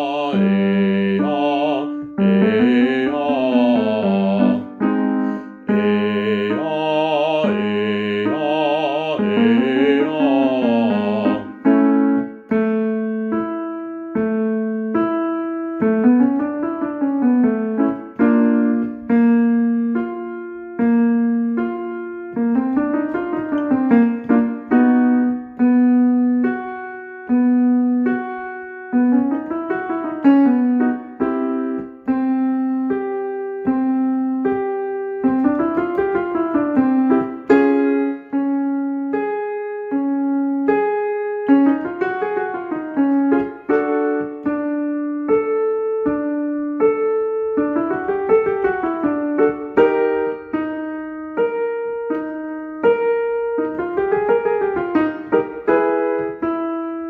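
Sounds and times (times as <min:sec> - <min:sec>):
piano chords and notes: 0:00.0 - 0:57.0.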